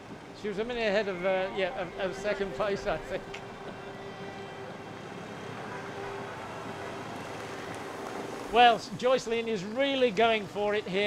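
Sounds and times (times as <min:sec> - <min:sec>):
faint constant tone: 0:00.0 - 0:11.0.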